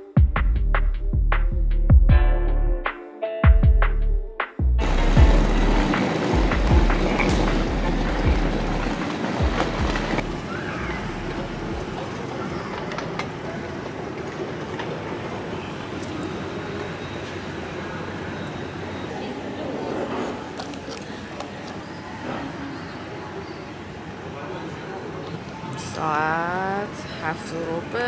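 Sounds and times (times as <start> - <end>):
background music: 0.0 - 10.3
low rumble: 4.2 - 10.4
terminal hall hum: 4.8 - 28.0.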